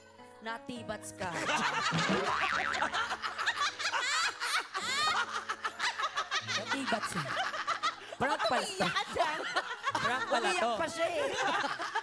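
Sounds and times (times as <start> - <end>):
people laughing: 1.3 - 12.0.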